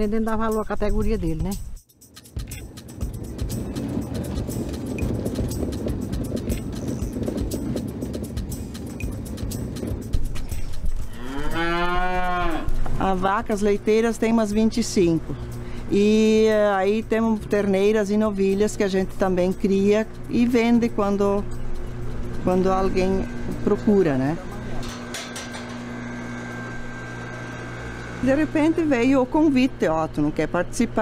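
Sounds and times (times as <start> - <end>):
milk cooling tank humming: 3.2 - 31.0
cow mooing: 11.1 - 12.8.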